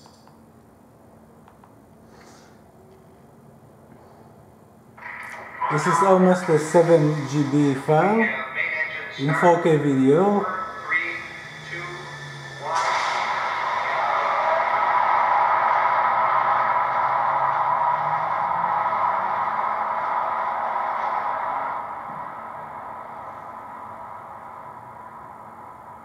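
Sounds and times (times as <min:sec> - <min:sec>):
rocket engine roar: 0:05.0 - 0:26.0.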